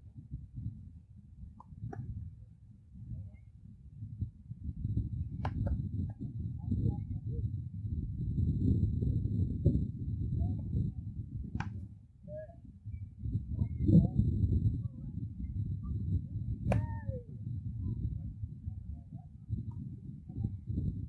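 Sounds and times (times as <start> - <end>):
steady low rumble: 0.0 - 21.0
baseball bat cracks: 16.7 - 16.9.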